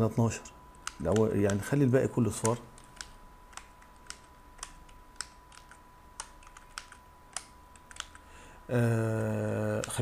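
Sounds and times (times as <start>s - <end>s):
computer keyboard key clicks: 2.4s - 8.2s.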